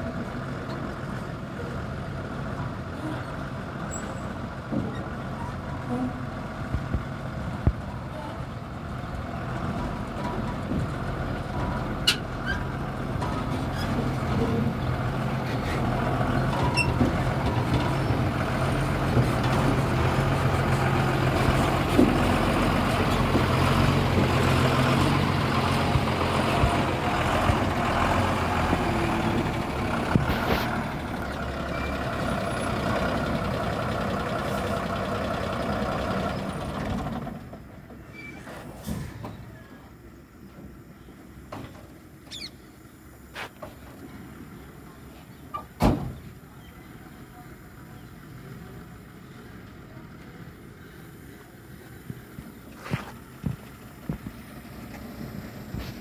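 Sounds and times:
diesel truck engine: 0.0s - 56.0s.

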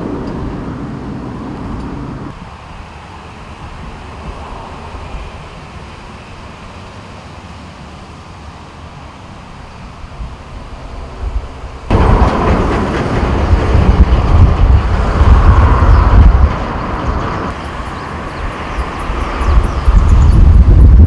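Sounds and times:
wind buffeting microphone: 10.0s - 21.0s.

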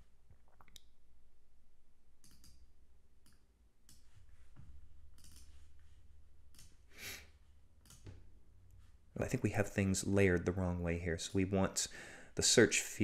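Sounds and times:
low steady hum: 0.0s - 13.0s
mouse and keyboard clicks: 5.2s - 5.6s.

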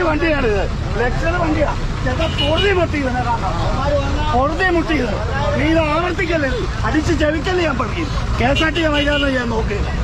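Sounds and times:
low rumble of vehicles: 0.0s - 10.0s
voices talking: 0.0s - 10.0s.

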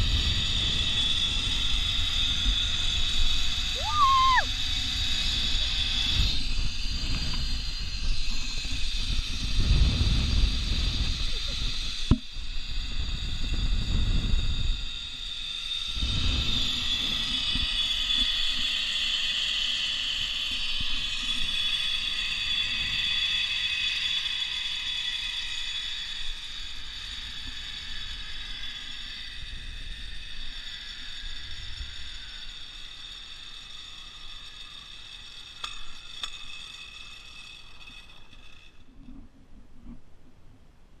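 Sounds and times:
wind buffeting microphone: 0.0s - 15.2s
zipline pulleys whining on cable: 0.0s - 40.0s.

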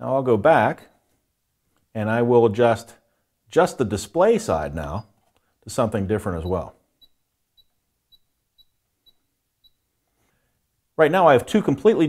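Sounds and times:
short high-pitched electronic beeps: 6.4s - 9.9s.

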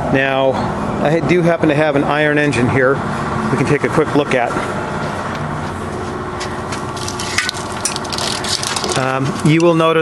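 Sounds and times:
machinery noise with hum: 0.0s - 10.0s.

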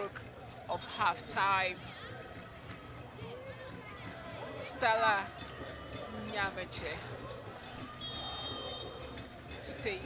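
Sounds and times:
high-pitched whistle: 8.0s - 9.1s.

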